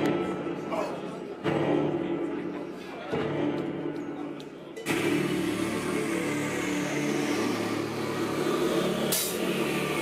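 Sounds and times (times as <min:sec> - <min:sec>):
bass guitar chords: 0:04.9 - 0:10.0
distorted electric guitars: 0:04.9 - 0:10.0.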